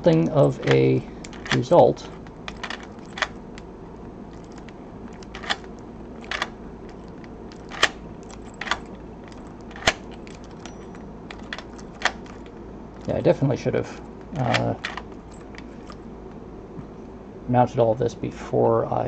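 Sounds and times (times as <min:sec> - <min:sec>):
steady low hum: 0:00.0 - 0:19.0
key clicking in lock: 0:00.1 - 0:03.7, 0:04.3 - 0:13.2, 0:14.2 - 0:16.1.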